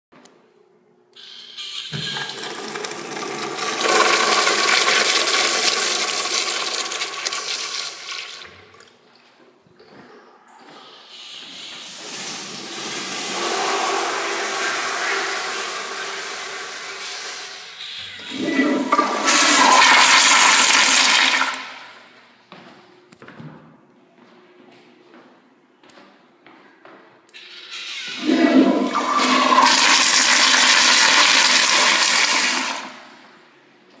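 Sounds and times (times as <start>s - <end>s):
urinal flushing: 1.2s - 9.2s, 10.8s - 22.1s, 27.4s - 33.4s.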